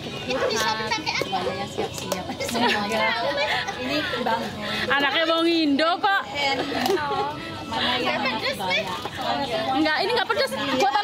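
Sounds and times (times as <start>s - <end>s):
adults and children chattering: 0.0s - 11.0s.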